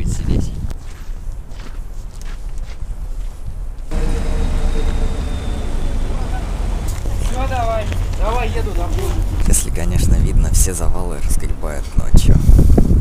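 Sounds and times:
light footsteps: 0:00.7 - 0:10.1
street traffic: 0:03.8 - 0:11.2.

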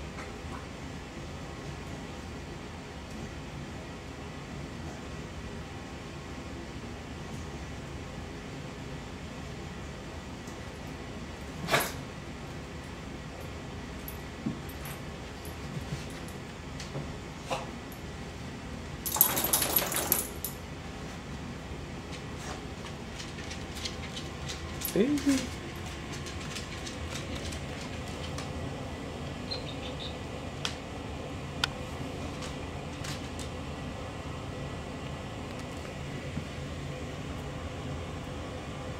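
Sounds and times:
low background hum: 0:00.0 - 0:38.9
dog claws clicking and rattling: 0:19.1 - 0:20.6, 0:23.1 - 0:28.5.

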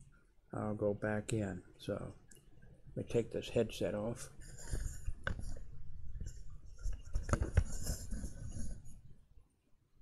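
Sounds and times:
rustling against microphone: 0:04.3 - 0:09.2.

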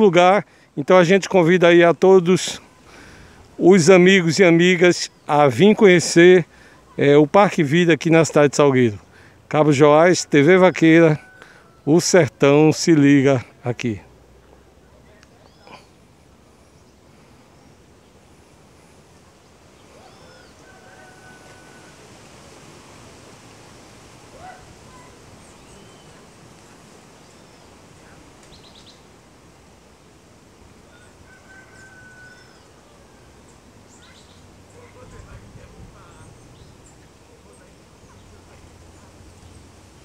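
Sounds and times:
steady low hiss: 0:00.0 - 0:40.0
whistled bird notes: 0:19.8 - 0:21.9, 0:24.4 - 0:26.3
bird chirps: 0:24.4 - 0:26.3, 0:28.4 - 0:29.1, 0:33.9 - 0:35.4.

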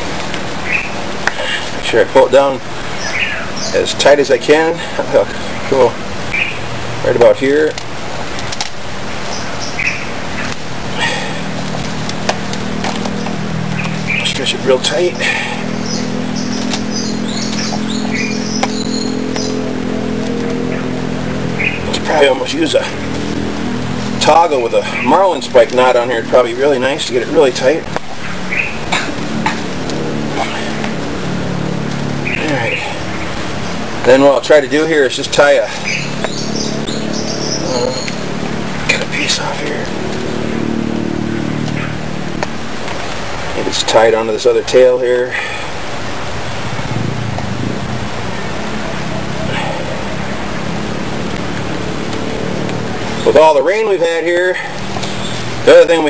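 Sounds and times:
engine drone: 0:00.0 - 0:56.0
steady low hum: 0:00.0 - 0:56.0
bird chirping: 0:00.6 - 0:01.8, 0:02.4 - 0:07.3, 0:09.2 - 0:11.8, 0:12.6 - 0:29.6, 0:32.1 - 0:42.1, 0:52.3 - 0:56.0.

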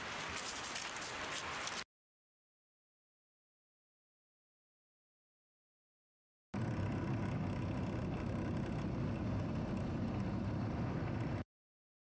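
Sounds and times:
armoured vehicle engine running: 0:06.6 - 0:11.4.

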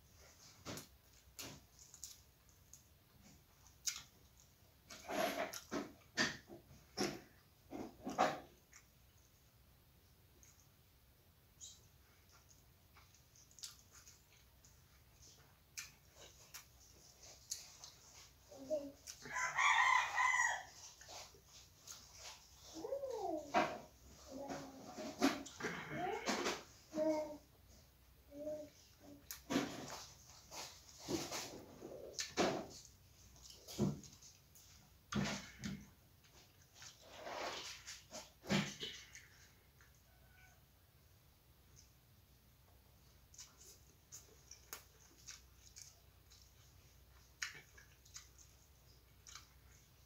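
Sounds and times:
rooster crowing: 0:19.2 - 0:20.8.

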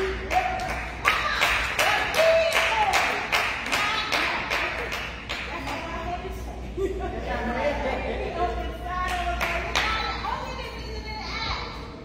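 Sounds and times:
hand claps: 0:00.0 - 0:05.8.

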